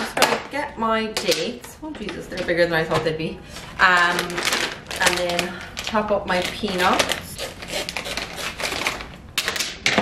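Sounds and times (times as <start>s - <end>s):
plastic bag crinkling: 3.5s - 9.8s.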